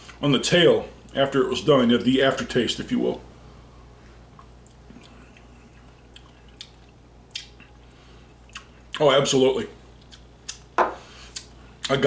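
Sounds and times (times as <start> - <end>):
steady low hum: 0.0 - 12.0
lip smacks and mouth clicks: 4.3 - 7.8, 8.4 - 9.0, 10.0 - 10.7, 11.3 - 12.0.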